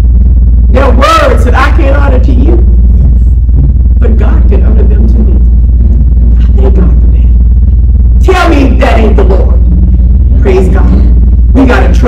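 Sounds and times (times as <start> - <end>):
loud low hum: 0.0 - 12.0.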